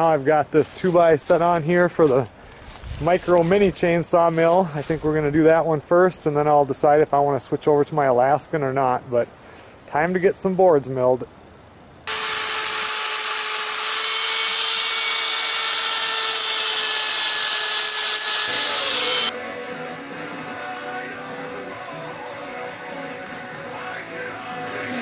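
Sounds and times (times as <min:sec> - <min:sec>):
cordless drill drilling into steel: 0:12.1 - 0:19.3
background music: 0:18.6 - 0:25.0.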